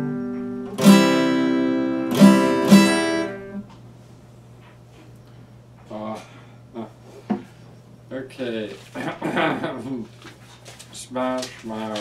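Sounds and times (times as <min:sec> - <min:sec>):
paper rustling: 0:10.0 - 0:12.0.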